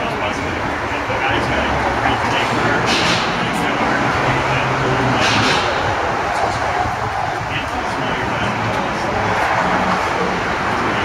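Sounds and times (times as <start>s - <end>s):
vehicle rumble: 0.0s - 11.0s.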